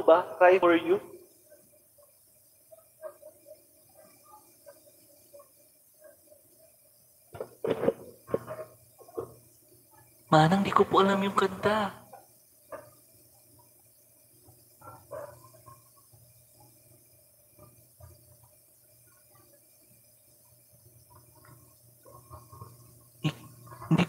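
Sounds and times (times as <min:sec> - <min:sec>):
faint steady hum: 0:00.0 - 0:24.0
faint murmurs: 0:01.1 - 0:10.3, 0:21.1 - 0:24.0.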